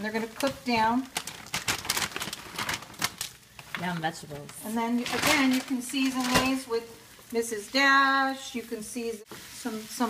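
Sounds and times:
vegetables crackling in a frying pan: 0.0s - 10.0s.

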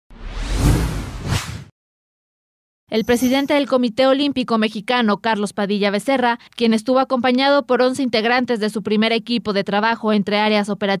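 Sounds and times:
whoosh: 0.1s - 1.7s.

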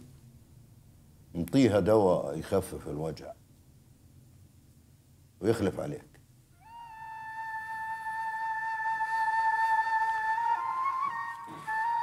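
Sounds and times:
flute note sliding up: 6.6s - 12.0s.

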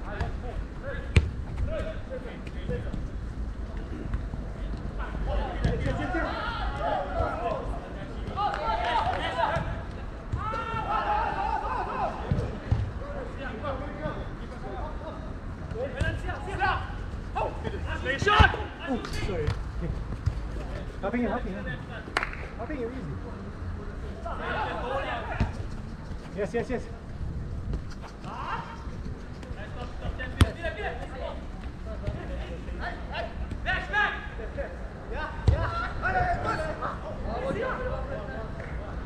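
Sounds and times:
players shouting: 5.0s - 12.6s.

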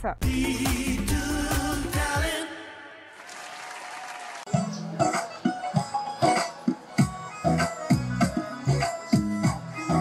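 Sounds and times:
people clapping: 3.1s - 4.6s.

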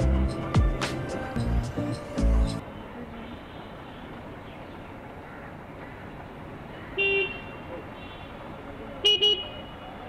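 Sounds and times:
steady road noise: 0.0s - 10.0s
vehicle horn honking: 7.0s - 8.4s, 9.0s - 9.9s.

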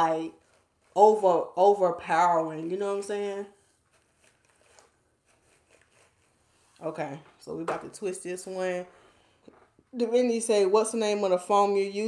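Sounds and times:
brush rustling through hair: 0.0s - 8.9s.

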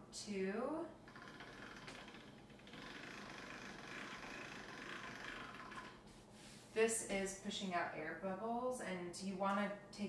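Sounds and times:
pasta machine rollers whirring: 1.0s - 6.1s.

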